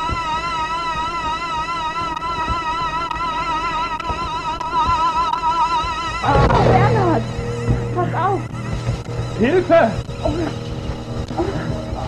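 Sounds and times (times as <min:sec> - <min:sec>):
wavering soundtrack tone: 0:00.0 - 0:12.0.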